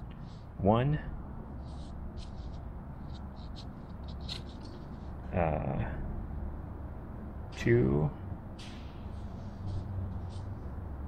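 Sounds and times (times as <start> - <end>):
low room hum: 0.0 - 11.0
hand rustling paper: 1.6 - 5.2.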